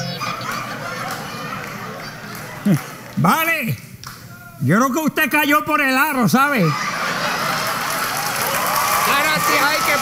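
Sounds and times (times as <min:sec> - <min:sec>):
audience applauding: 0:00.2 - 0:03.2, 0:06.8 - 0:10.0.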